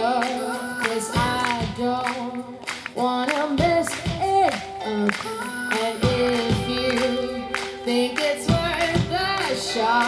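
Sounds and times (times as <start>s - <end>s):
woman singing live: 0.0s - 10.0s
band playing: 3.6s - 10.0s.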